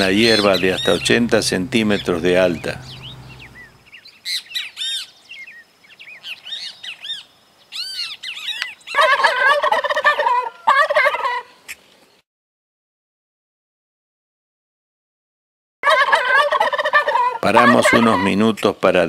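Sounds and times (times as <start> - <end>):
turkey gobbling: 0.0 - 3.8, 8.4 - 11.8, 15.8 - 18.6
small birds chirping: 0.0 - 9.2.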